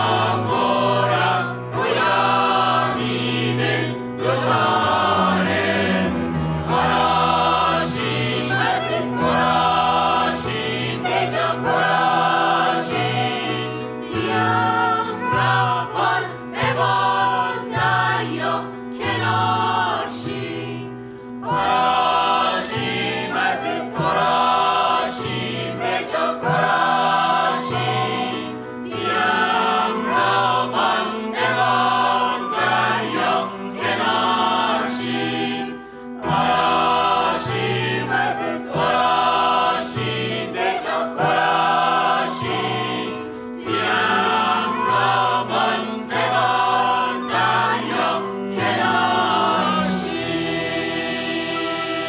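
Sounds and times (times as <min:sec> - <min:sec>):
mixed choir singing folk song: 0:00.0 - 0:52.0
piano: 0:00.0 - 0:52.0.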